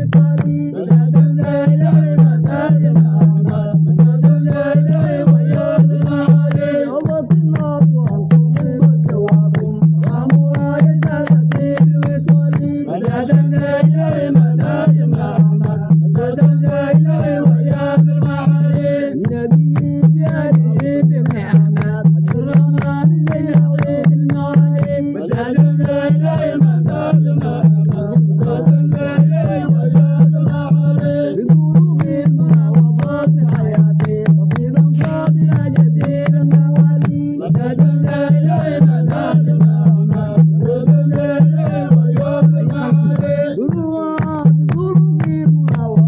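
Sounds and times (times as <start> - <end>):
hand drum beat: 0.0 - 46.0.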